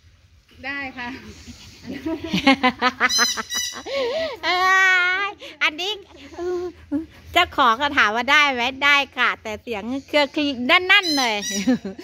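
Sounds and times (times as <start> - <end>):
voices talking: 0.6 - 12.0.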